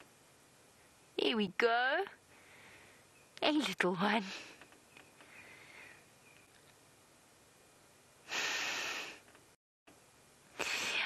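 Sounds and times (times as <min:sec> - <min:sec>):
breathy exhale into microphone: 0:05.2 - 0:06.0, 0:08.3 - 0:09.3.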